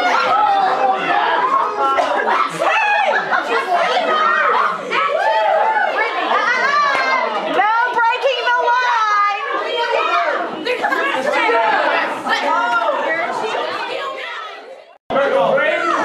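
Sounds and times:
crowd shouting and cheering: 0.0 - 16.0.

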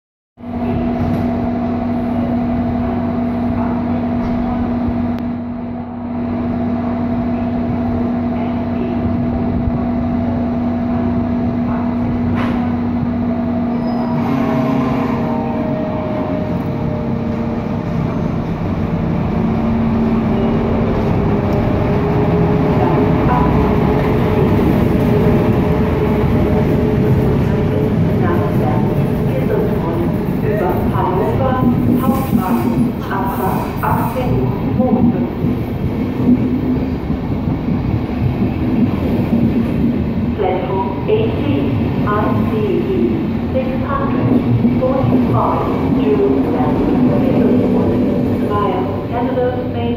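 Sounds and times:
rising locomotive tone: 0.4 - 30.4
electric locomotive humming: 0.4 - 49.9
train coaches rolling: 8.2 - 49.9.

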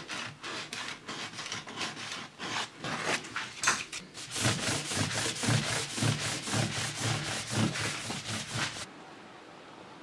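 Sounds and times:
hand rubbing wooden workbench: 4.2 - 8.9.

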